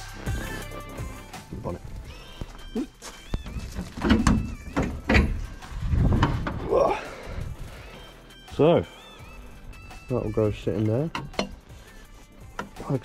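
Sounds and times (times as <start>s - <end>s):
dull low thumps: 1.4s - 7.8s.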